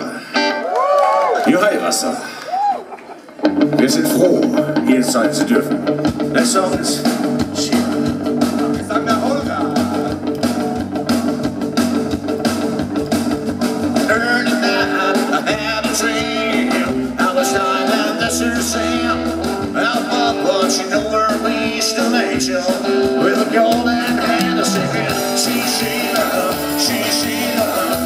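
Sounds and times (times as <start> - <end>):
electric guitar: 0.0 - 1.4, 2.5 - 28.0
drum kit: 3.5 - 28.0.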